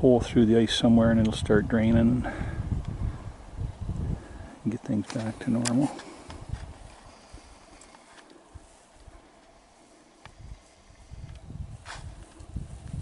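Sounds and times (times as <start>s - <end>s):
faint outdoor hiss: 0.0s - 13.0s
footsteps in deep snow: 5.1s - 13.0s.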